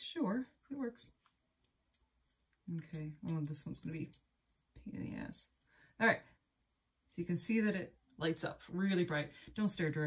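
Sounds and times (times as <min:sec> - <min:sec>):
woman speaking: 0:00.0 - 0:01.2, 0:02.7 - 0:04.2, 0:04.8 - 0:06.3, 0:07.1 - 0:10.0.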